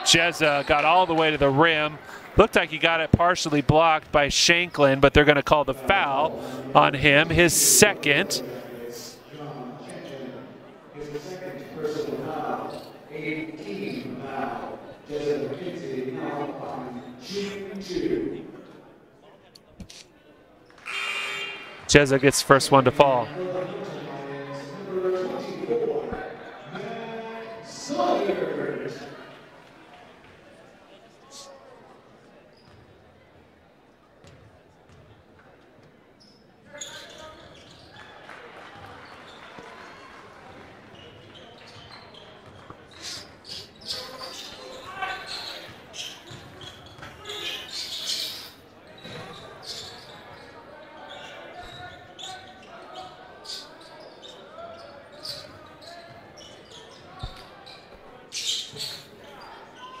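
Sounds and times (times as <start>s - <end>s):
voices in a gym: 0.0s - 60.0s.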